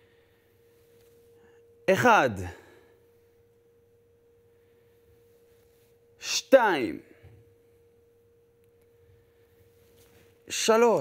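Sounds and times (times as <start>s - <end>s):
faint steady mid-pitched tone: 0.0s - 11.0s.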